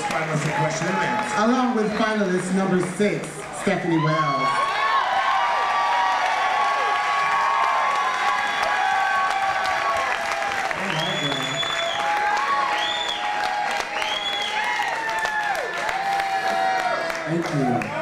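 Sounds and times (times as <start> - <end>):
audience applauding and cheering: 0.0 - 18.0
high whoops: 3.9 - 17.2.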